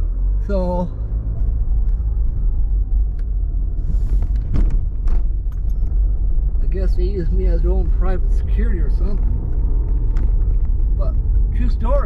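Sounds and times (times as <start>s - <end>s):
car engine and tyres rumbling: 0.0s - 12.0s.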